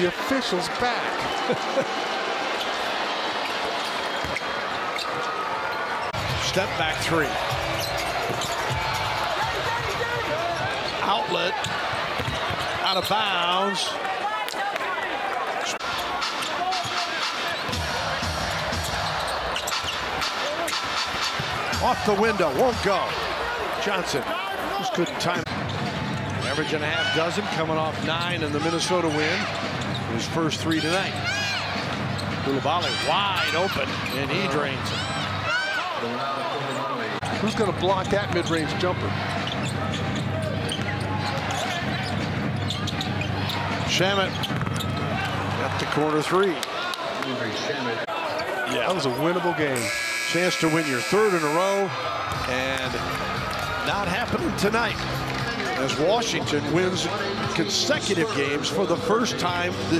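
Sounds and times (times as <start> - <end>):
arena crowd noise: 0.0 - 59.9.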